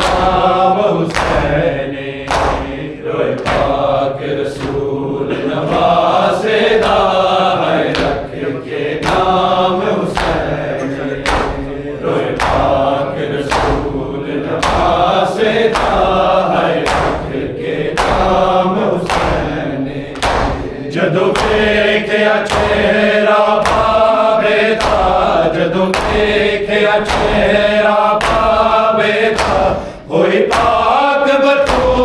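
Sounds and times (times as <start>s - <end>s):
hands slapping chests: 0.0s - 32.0s
men chanting in chorus: 0.0s - 32.0s.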